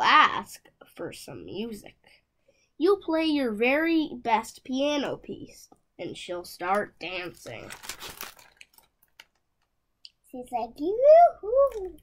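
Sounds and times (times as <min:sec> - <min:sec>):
paper rustling: 0:07.1 - 0:09.7.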